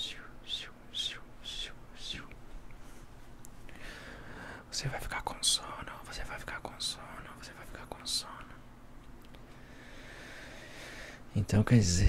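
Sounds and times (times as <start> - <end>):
man whispering: 0.0 - 2.4, 4.7 - 8.6, 11.3 - 12.0.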